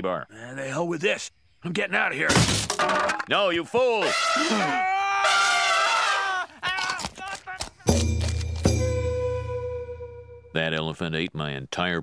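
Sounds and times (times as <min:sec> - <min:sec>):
man screaming: 0:04.0 - 0:07.8.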